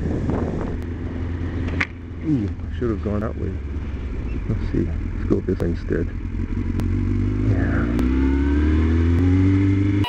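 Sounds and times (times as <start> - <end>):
road noise: 0.0 - 10.0
vehicle engine hum: 0.0 - 10.0.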